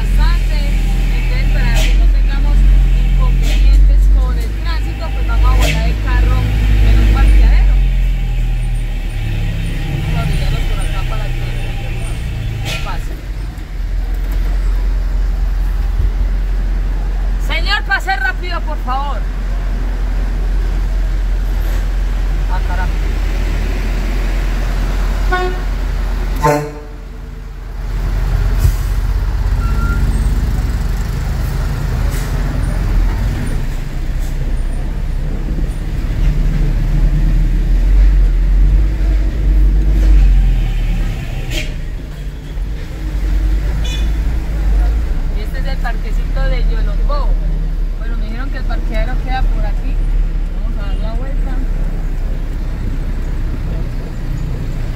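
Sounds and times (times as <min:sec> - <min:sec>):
truck engine rumbling: 0:00.0 - 0:54.9.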